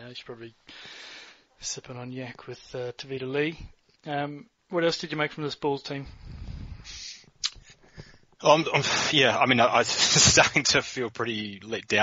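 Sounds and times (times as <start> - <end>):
breathing on microphone: 0.7 - 1.6, 6.0 - 9.1
inhaled hiss: 6.2 - 8.2
mouth click: 7.4 - 7.7.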